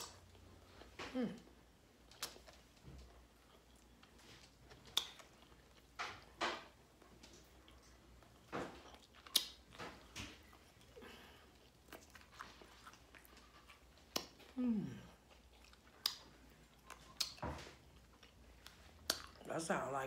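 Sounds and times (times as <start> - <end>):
person humming mm: 1.0 - 1.5, 14.6 - 15.2
person biting and chewing: 2.0 - 2.6, 3.4 - 6.2, 7.6 - 14.6, 15.2 - 19.4
wet mouth clicks and smacks: 4.8 - 6.0, 9.2 - 10.3, 14.0 - 14.5, 15.6 - 17.4, 18.2 - 19.4.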